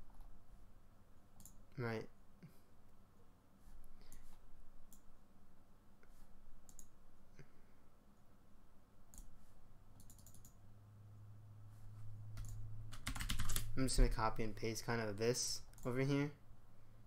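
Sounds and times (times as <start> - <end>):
computer mouse clicking: 1.4 - 1.6, 4.0 - 5.1, 6.6 - 7.0, 9.1 - 9.4, 10.0 - 10.6, 12.4 - 13.7, 15.7 - 16.0.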